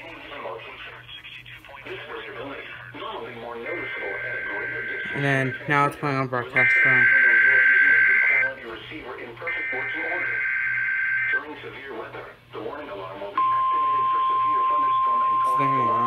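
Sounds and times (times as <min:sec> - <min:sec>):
broadcast voice talking: 0:00.0 - 0:16.0
steady single-pitch alarm tone: 0:03.7 - 0:08.6, 0:09.4 - 0:11.6, 0:13.4 - 0:16.0
warbling digital header bursts: 0:03.7 - 0:08.6.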